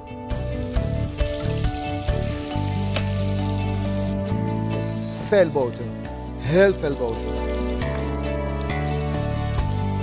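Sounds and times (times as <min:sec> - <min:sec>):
background music: 0:00.0 - 0:10.0
food sizzling in a pan: 0:00.4 - 0:06.2.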